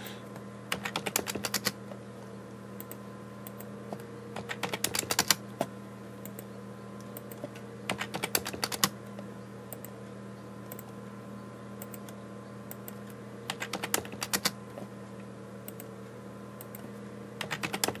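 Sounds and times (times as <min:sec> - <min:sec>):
steady low hum: 0:00.0 - 0:18.0
computer keyboard keystrokes: 0:00.7 - 0:01.8, 0:04.4 - 0:05.4, 0:07.2 - 0:09.0, 0:11.8 - 0:14.6, 0:17.4 - 0:18.0.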